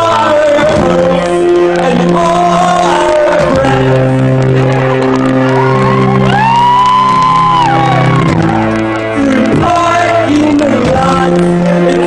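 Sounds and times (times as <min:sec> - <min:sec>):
crowd noise: 0:00.0 - 0:12.0
electronic keyboard chords: 0:00.0 - 0:12.0.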